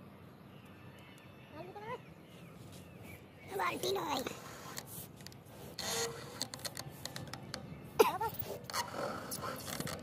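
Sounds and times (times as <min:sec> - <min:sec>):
scraping and rubbing: 0:04.2 - 0:07.5, 0:08.3 - 0:10.0.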